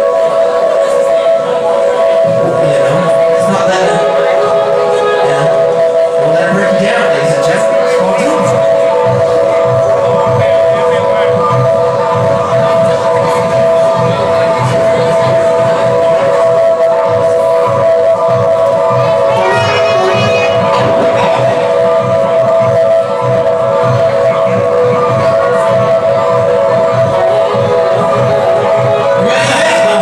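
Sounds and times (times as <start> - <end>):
jazz-funk band playing: 18.6 - 25.6.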